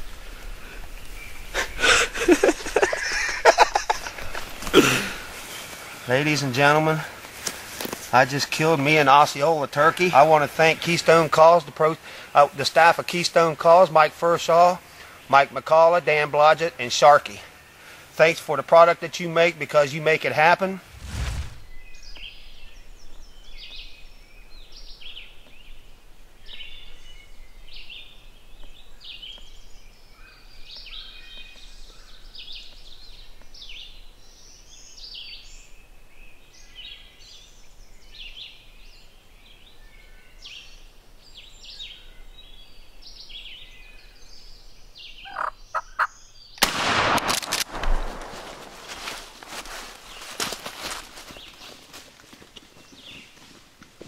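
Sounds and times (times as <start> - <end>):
loud burst: 20.9 - 21.8, 46.6 - 48.9
wild turkeys calling: 45.2 - 46.2.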